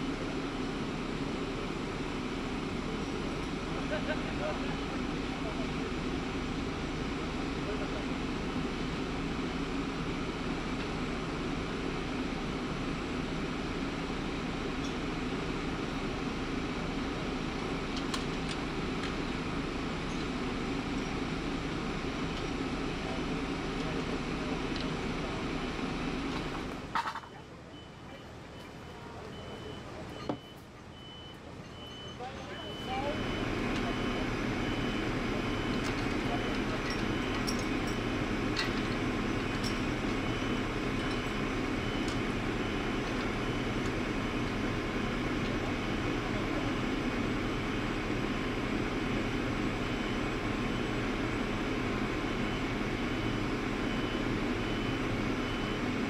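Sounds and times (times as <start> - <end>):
truck diesel engine running: 0.0 - 27.0, 27.7 - 56.0.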